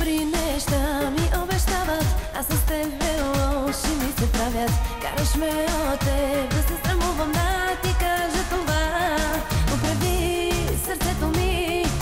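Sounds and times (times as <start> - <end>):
electronic kick-drum beat: 0.0 - 12.0
woman singing with vibrato: 0.0 - 12.0.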